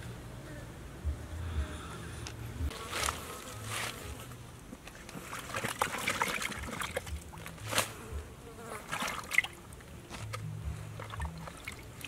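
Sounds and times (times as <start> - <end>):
fly buzzing: 0.4 - 4.6, 7.2 - 11.4
rustle and knock on leaves: 2.7 - 4.4, 7.1 - 8.2.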